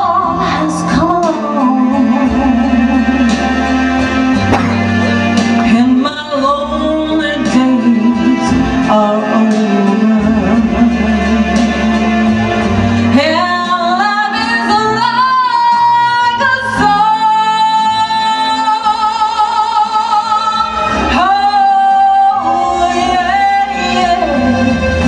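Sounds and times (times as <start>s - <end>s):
instrumental accompaniment: 0.0s - 25.0s
woman singing with vibrato: 0.0s - 25.0s.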